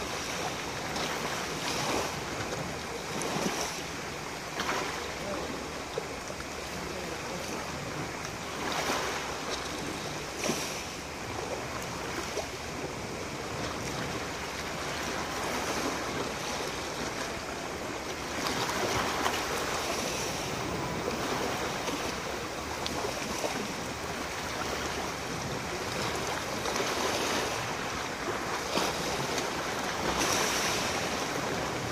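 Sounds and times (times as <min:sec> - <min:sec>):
waves washing onto pebbles: 0:00.0 - 0:31.9.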